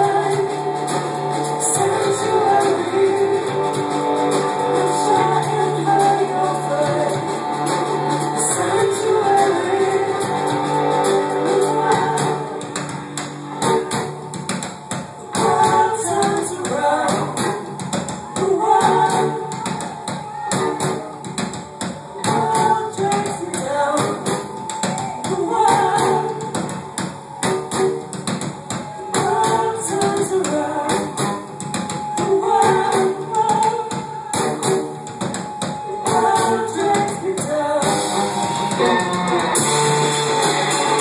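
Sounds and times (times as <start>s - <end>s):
woman singing: 0.0s - 27.8s, 28.7s - 41.0s
guitars: 0.0s - 41.0s
steady percussive beat: 0.0s - 41.0s.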